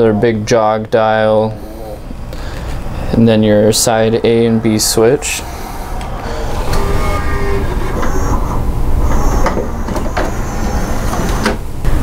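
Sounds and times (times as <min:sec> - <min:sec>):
disc tray motor rumble: 0:01.0 - 0:12.0.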